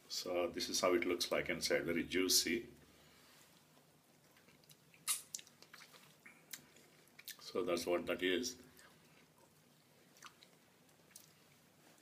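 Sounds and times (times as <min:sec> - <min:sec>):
wet chewing sounds: 0:03.5 - 0:07.5, 0:08.7 - 0:12.0
mouth smack: 0:05.0 - 0:07.4.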